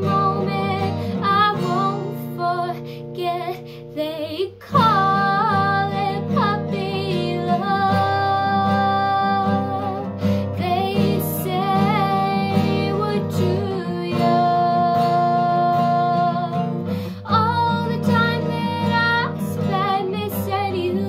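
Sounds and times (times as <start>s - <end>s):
girl singing: 0.0s - 21.0s
strummed acoustic guitar: 0.0s - 21.0s.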